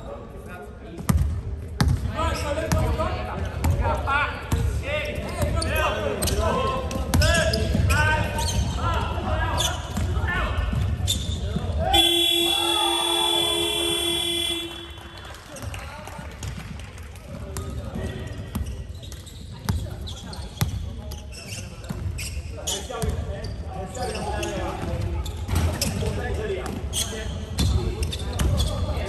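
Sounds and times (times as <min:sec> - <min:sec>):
sneakers squeaking: 0:05.0 - 0:12.5, 0:17.6 - 0:29.0
players calling out: 0:11.6 - 0:15.8.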